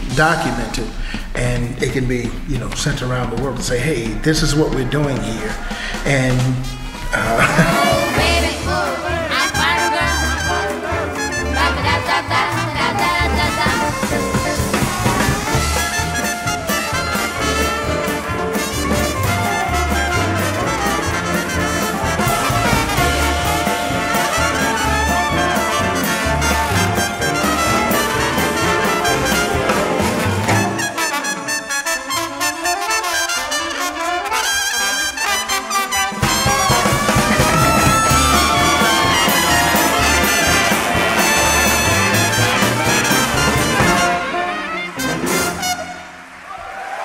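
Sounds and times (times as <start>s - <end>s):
bass and drums: 0.0s - 31.0s, 36.1s - 44.4s
big band brass section: 0.0s - 47.0s.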